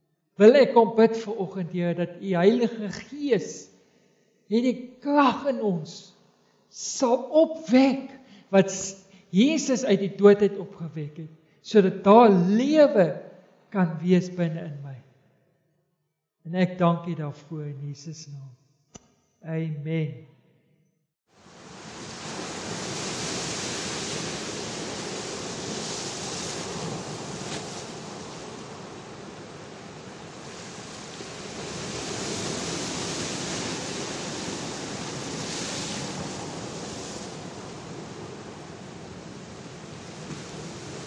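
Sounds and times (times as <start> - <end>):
waves breaking on shore: 21.4 - 41.0.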